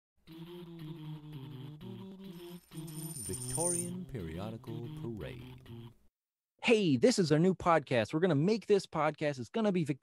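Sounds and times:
jingle of held notes: 2.7s - 4.0s
person speaking: 3.0s - 5.4s
voice with gliding pitch: 3.2s - 5.8s.

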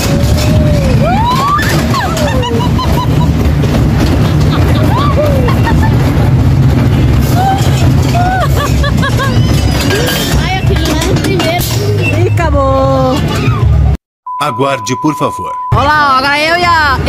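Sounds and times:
roller coaster rumbling on track: 0.0s - 14.0s, 16.1s - 17.0s
riders' voices and laughter: 0.4s - 6.6s, 7.3s - 12.4s.

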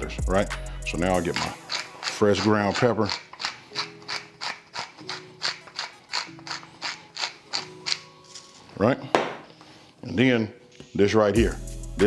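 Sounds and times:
pepper mill grinding clicks: 1.2s - 8.1s.

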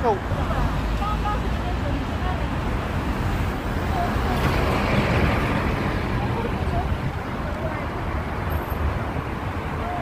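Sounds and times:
cars passing with rumble: 0.0s - 10.0s.

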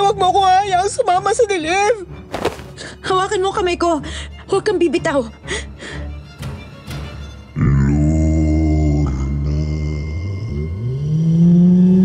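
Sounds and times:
low horror drone: 7.6s - 12.0s.

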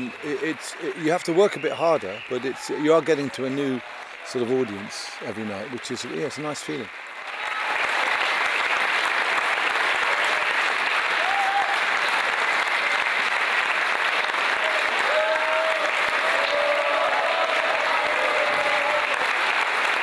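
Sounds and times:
audience applauding: 0.0s - 20.0s.

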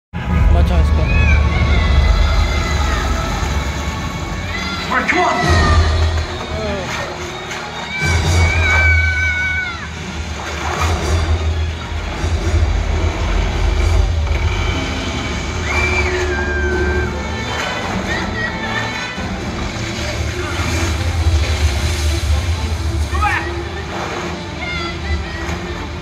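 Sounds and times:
heavy low rumble: 0.1s - 6.6s, 9.9s - 26.0s
film music: 0.1s - 26.0s
water rushing and sloshing: 0.2s - 26.0s
people shouting: 0.8s - 13.2s, 13.8s - 22.2s, 22.8s - 26.0s.

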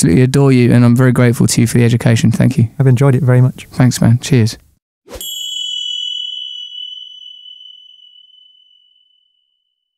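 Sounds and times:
small bell ding: 5.2s - 9.9s.

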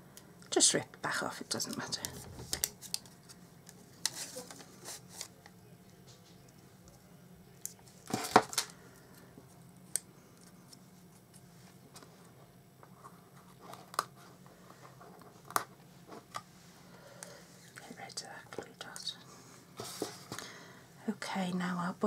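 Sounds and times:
card stock crackling and rustling: 1.6s - 5.6s.

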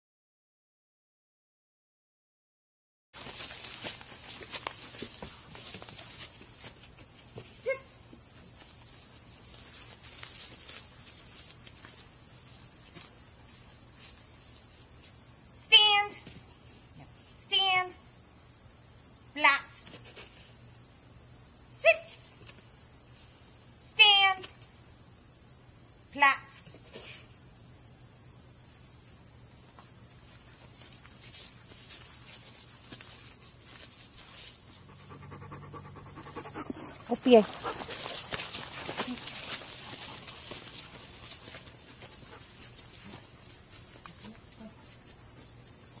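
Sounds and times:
high drone of insects: 3.2s - 46.0s
dog panting: 34.8s - 43.2s.

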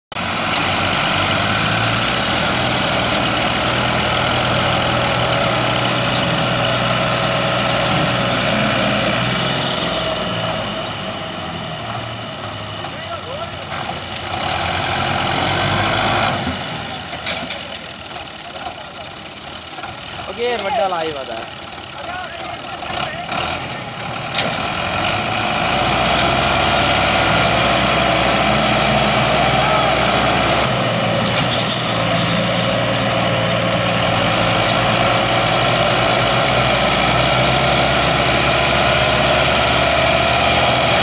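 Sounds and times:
tractor diesel engine under heavy load: 0.1s - 41.0s.

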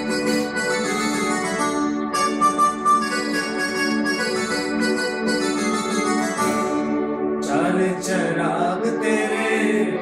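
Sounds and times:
electronic keyboard chords and melody: 0.0s - 10.0s
person singing: 7.4s - 10.0s.

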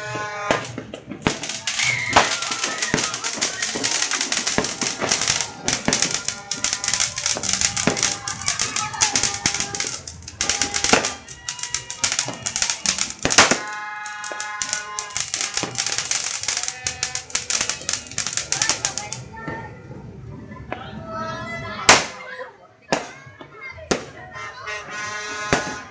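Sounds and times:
firework fountain crackling: 0.0s - 19.8s, 21.8s - 24.2s.

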